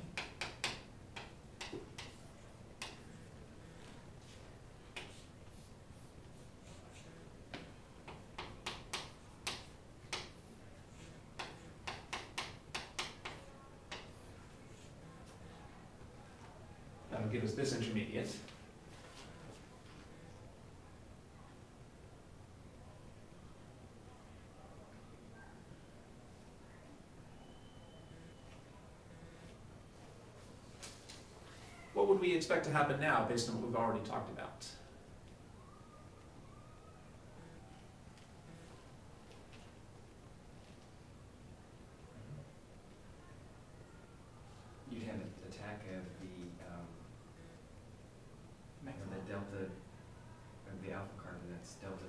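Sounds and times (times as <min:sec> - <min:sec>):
chalk tapping and scraping on blackboard: 0:00.0 - 0:03.2, 0:03.8 - 0:14.2
man speaking: 0:17.1 - 0:18.5, 0:32.0 - 0:34.8, 0:48.8 - 0:49.8.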